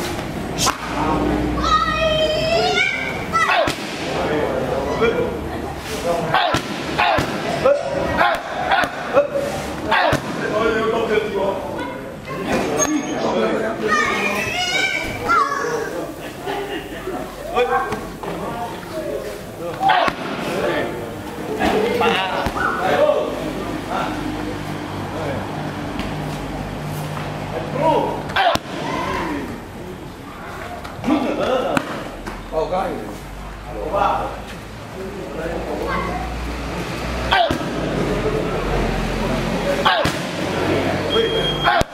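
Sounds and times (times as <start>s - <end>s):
voices: 0.0s - 41.9s
sharp smack: 0.6s - 1.0s.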